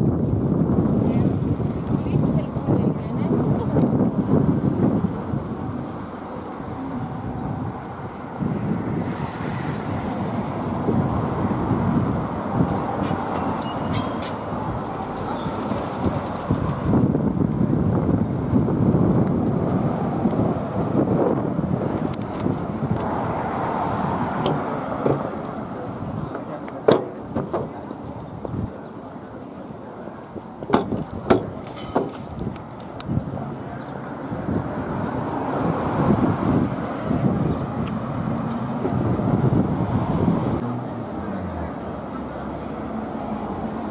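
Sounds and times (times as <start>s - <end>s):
wind buffeting microphone: 0.0s - 40.7s
passing car traffic: 0.0s - 43.9s
people's voices: 0.8s - 16.6s, 24.0s - 39.2s, 40.6s - 43.9s
sharp knocks: 26.8s - 27.8s.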